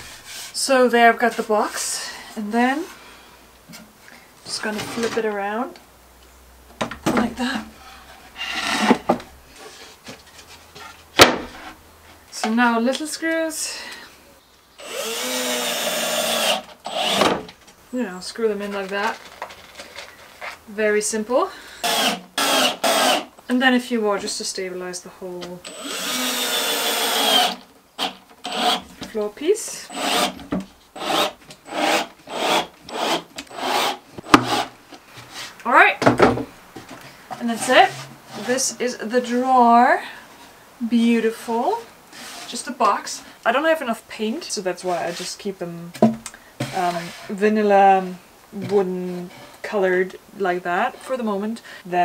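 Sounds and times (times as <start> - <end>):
wood scraping: 0.0 - 1.9, 3.7 - 5.4, 6.8 - 12.2, 14.8 - 20.7, 26.2 - 39.6, 41.3 - 43.0, 44.8 - 49.8
hand tool rasping on wood: 31.0 - 34.7.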